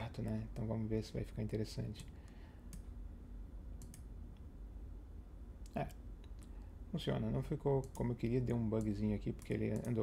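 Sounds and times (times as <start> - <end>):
low steady hum: 0.0 - 10.0
computer mouse clicks: 2.0 - 2.9, 3.8 - 4.1, 7.8 - 8.1, 8.7 - 10.0.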